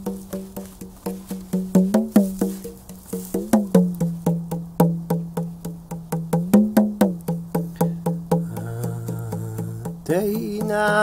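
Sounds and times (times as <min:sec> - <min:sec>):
hand drum played with fingers: 0:00.0 - 0:11.0.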